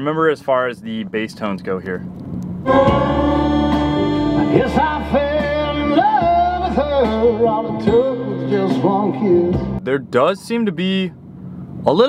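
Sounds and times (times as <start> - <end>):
strong steady bass: 0.0 - 12.0
song on car stereo: 2.6 - 9.8.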